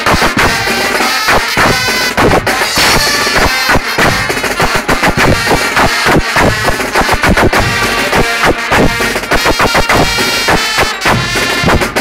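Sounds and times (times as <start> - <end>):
brass band playing loudly: 0.0 - 12.0
drum kit with cymbals: 0.0 - 12.0.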